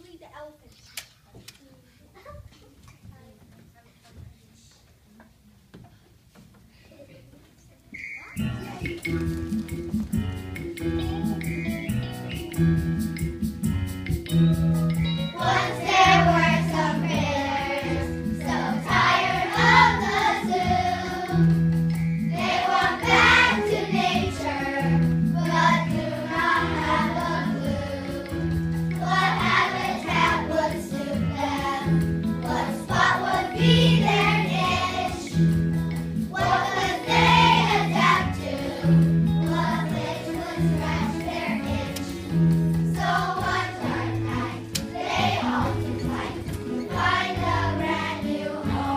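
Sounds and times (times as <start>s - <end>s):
instrumental accompaniment: 8.3s - 48.9s
children's choir singing: 15.3s - 35.4s, 36.3s - 48.9s.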